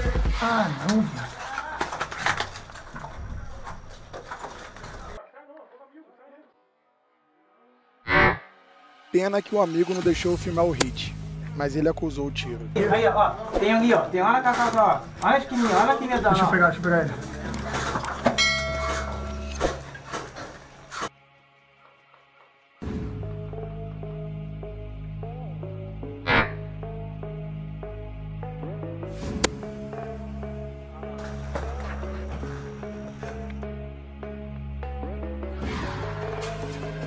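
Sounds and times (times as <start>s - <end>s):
metallic ringing: 18.2s - 20.2s.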